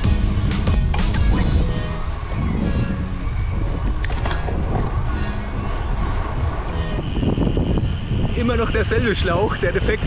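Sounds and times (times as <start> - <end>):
wind rumbling on microphone: 1.3 - 10.0.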